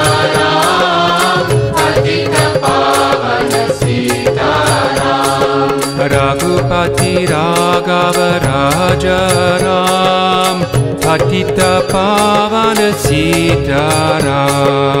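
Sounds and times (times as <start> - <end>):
steady percussive beat: 0.0 - 15.0
voices singing a devotional chant: 0.0 - 15.0.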